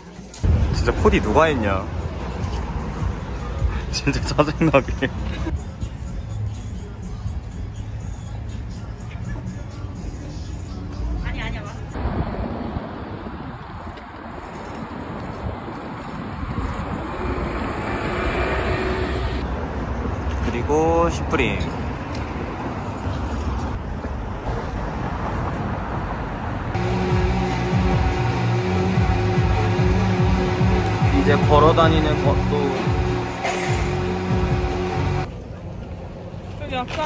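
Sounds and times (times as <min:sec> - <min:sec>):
cars passing: 0:00.0 - 0:37.0
short rising pitched sound: 0:17.0 - 0:19.4.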